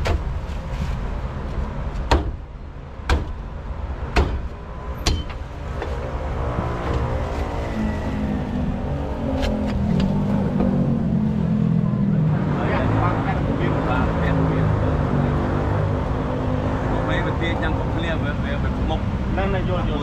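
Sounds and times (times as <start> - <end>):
sharp knocks: 2.0 - 2.4, 3.0 - 3.4, 4.1 - 5.4
vehicle engine running: 5.5 - 12.4
voices: 7.7 - 15.0.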